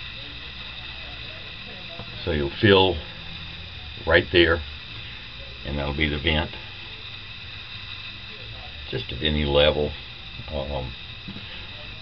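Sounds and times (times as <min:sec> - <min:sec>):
room tone hum and hiss: 0:00.0 - 0:12.0.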